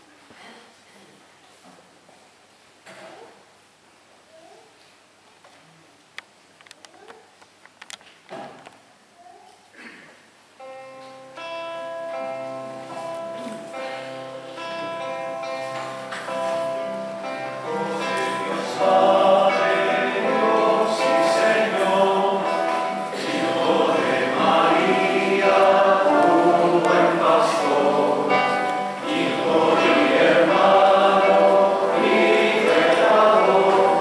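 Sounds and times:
choir singing a hymn: 0:14.6 - 0:34.0.

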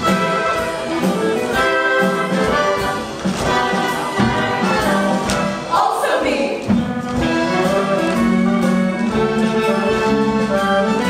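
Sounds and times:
brass show band playing: 0:00.0 - 0:06.0, 0:06.7 - 0:11.0.

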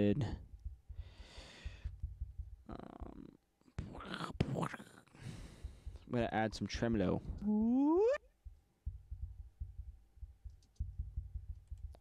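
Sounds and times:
man whispering: 0:00.0 - 0:00.4, 0:02.6 - 0:05.1
breathing close to microphone: 0:00.9 - 0:02.0, 0:05.1 - 0:06.1.

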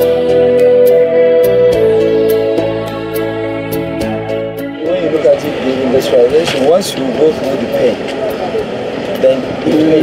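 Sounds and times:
men talking: 0:04.8 - 0:10.0.

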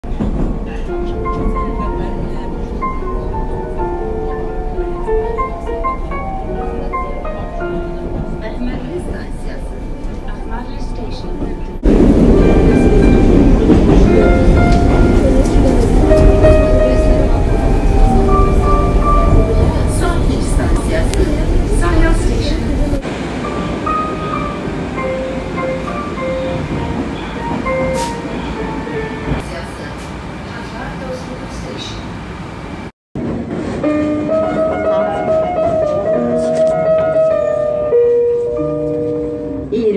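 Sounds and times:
metro train rumbling: 0:00.0 - 0:39.9
electronic announcement tune: 0:01.0 - 0:29.4.

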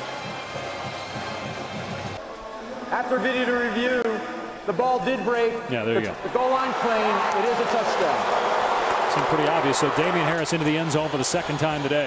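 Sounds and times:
stadium crowd din: 0:00.0 - 0:04.6, 0:06.0 - 0:12.0.

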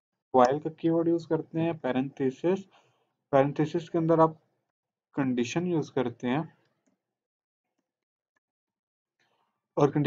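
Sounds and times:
man's voice: 0:09.8 - 0:10.0.

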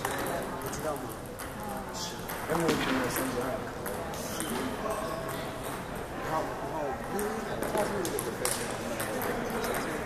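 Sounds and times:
table tennis balls clicking: 0:00.0 - 0:04.6, 0:07.2 - 0:10.0.

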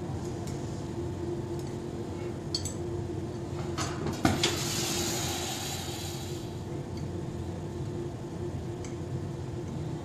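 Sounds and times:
steady low hum: 0:00.0 - 0:10.0
gas torch hissing: 0:04.2 - 0:06.7.

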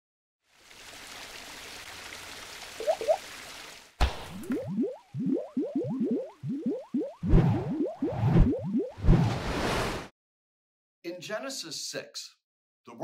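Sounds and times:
steady hiss like running water: 0:00.5 - 0:04.0
quick bloops: 0:02.8 - 0:03.2
short rising bloops: 0:02.8 - 0:03.2, 0:04.3 - 0:09.4.

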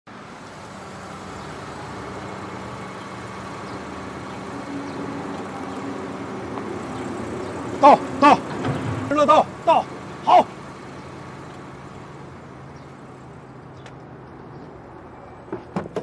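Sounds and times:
car engine and tyres at low speed: 0:00.1 - 0:16.0
man calling out: 0:07.6 - 0:10.6.

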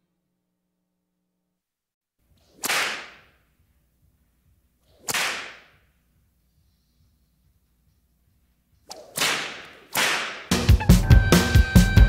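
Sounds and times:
sharp whip-like cracks: 0:02.3 - 0:03.5, 0:04.8 - 0:05.9, 0:08.9 - 0:10.5.

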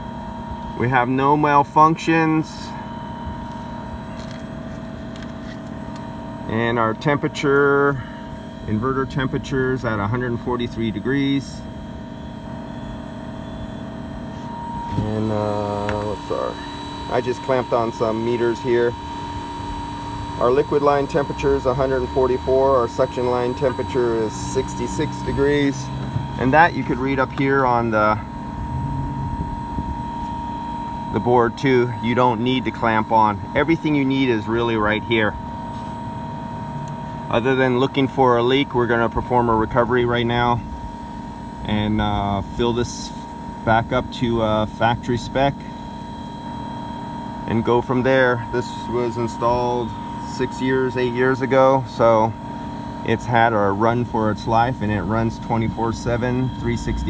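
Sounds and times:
air conditioner unit humming: 0:00.0 - 0:57.0
faint steady tone: 0:00.0 - 0:57.0
fan rushing noise: 0:00.0 - 0:57.0.

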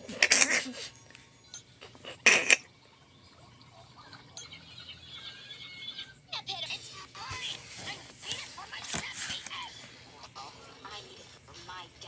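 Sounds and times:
cartoon soundtrack from tv: 0:00.0 - 0:12.0.

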